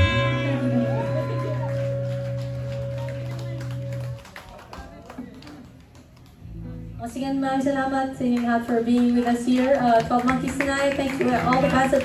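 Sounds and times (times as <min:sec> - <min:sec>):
electric guitar chord: 0:00.0 - 0:04.2
faint crowd noise: 0:00.0 - 0:12.0.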